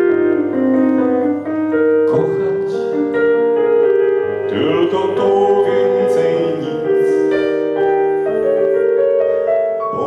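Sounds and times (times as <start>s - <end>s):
stage piano ballad: 0.0s - 10.0s.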